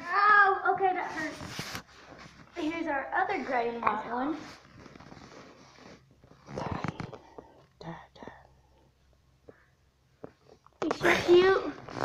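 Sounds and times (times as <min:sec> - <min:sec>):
person whispering softly: 0:06.5 - 0:08.6.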